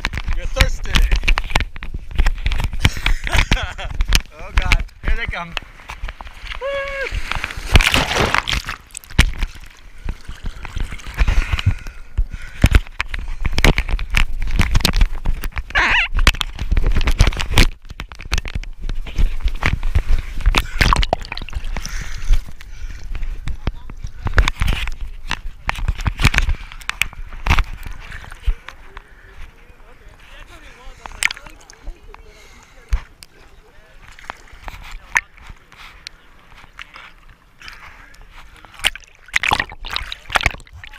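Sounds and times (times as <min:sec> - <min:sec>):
water splashing and sloshing: 0:00.0 - 0:40.9.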